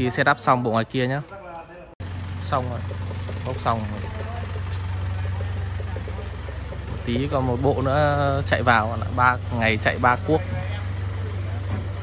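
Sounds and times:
truck engine idling: 0.1s - 12.0s.

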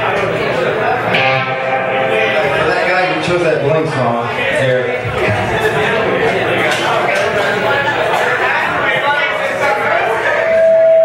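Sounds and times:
people talking: 0.0s - 11.0s
electric guitar strummed: 0.9s - 4.0s.

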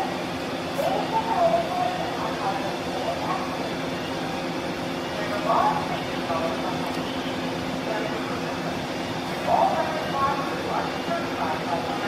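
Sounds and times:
ferry engines humming: 0.0s - 12.0s.

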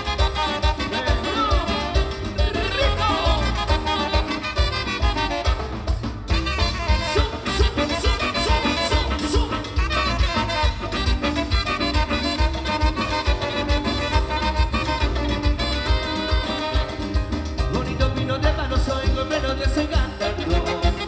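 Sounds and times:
saxophones: 0.0s - 17.6s
drum and bass beat: 0.0s - 21.0s
electric guitar: 0.0s - 21.0s
keyboards: 0.0s - 21.0s.

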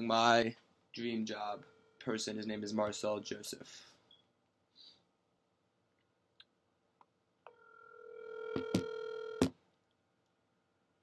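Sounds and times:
telephone ringback tone: 7.5s - 9.5s.

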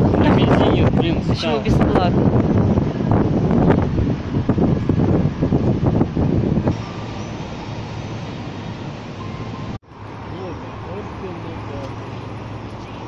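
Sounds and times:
wind buffeting microphone: 0.0s - 9.8s
street traffic: 0.0s - 13.0s.

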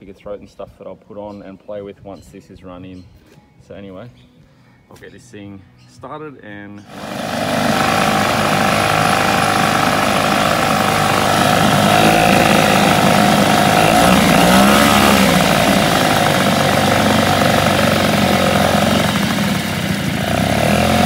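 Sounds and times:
outboard motor running: 6.9s - 21.0s
propeller churning water: 6.9s - 21.0s.

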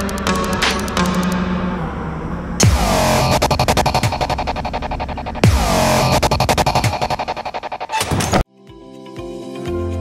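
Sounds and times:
rapid stuttering electronic pulse: 2.6s - 7.9s.

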